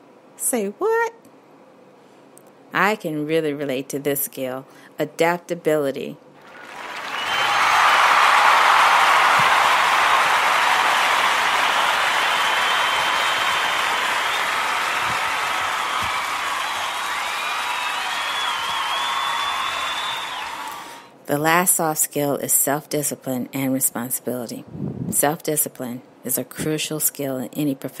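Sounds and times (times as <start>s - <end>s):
audience applause: 6.4s - 21.0s.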